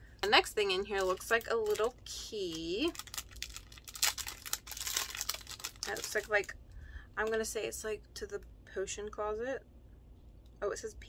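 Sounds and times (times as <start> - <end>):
packaging crinkling and rustling: 0.2 - 6.6.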